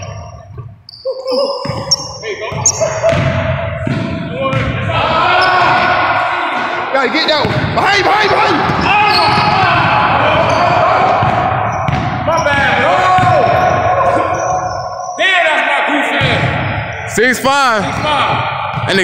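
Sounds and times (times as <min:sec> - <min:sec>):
players' voices: 0:00.0 - 0:19.0
basketball bouncing on hardwood floor: 0:01.6 - 0:04.8, 0:11.0 - 0:13.4, 0:17.9 - 0:19.0.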